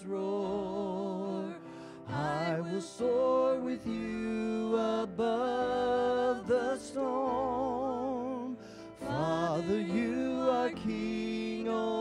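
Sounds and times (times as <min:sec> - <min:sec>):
woman singing worship song: 0:00.0 - 0:07.9, 0:09.0 - 0:12.0
keyboard accompaniment: 0:00.0 - 0:12.0.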